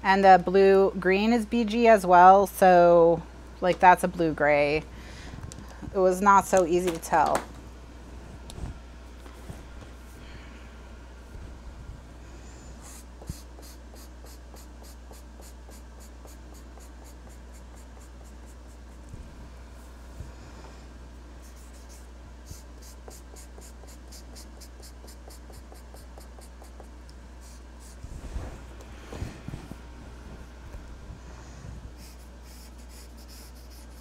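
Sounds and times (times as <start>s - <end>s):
marker scratching on paper: 12.8s - 19.0s, 21.4s - 28.0s, 32.0s - 34.0s.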